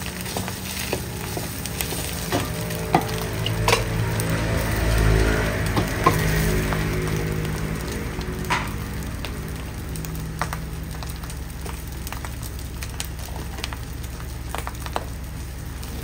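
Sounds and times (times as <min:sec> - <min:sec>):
food sizzling in a wok: 0:00.0 - 0:16.0
low hum: 0:00.0 - 0:16.0
wooden spatula knocking on wok: 0:00.3 - 0:04.0.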